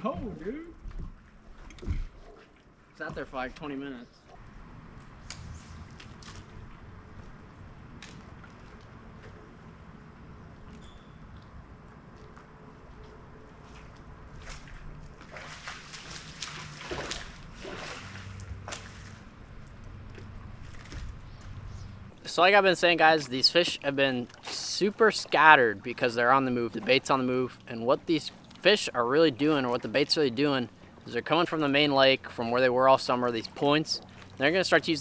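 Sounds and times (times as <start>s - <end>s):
water lapping against boat hull: 0.0s - 4.6s, 11.3s - 35.0s.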